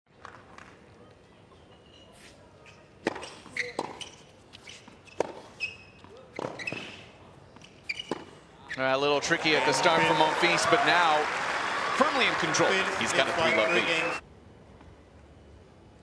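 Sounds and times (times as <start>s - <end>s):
tennis ball bouncing: 3.0s - 4.1s, 5.1s - 6.9s, 7.6s - 8.4s.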